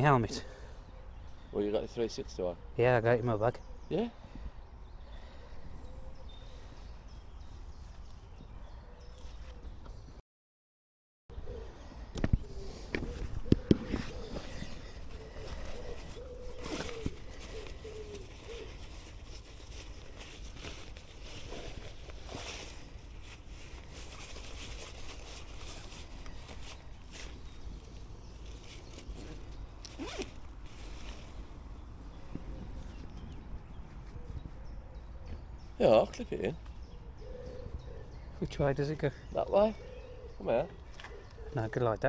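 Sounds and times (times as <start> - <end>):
backpack zipper pulled: 29.1 - 30.5.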